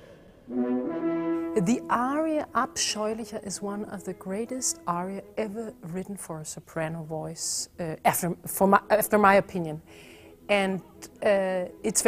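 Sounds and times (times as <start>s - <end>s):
orchestra sustained brass notes: 0.0s - 6.2s
woman speaking: 1.6s - 9.9s, 10.5s - 12.0s.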